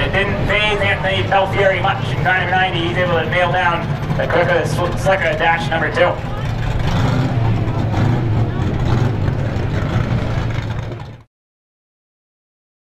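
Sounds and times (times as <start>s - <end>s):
race car engines droning: 0.0s - 11.3s.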